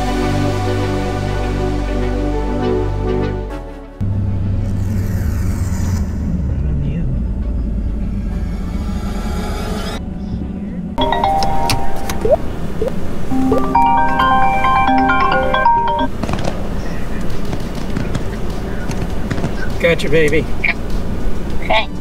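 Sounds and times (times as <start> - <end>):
road and engine rumble: 4.0 - 22.0
chiming phone ringtone: 11.0 - 12.4, 13.3 - 16.1.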